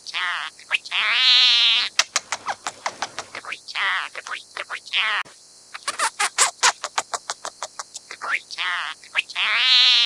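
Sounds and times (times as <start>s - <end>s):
bird clicking notes: 1.9s - 3.4s.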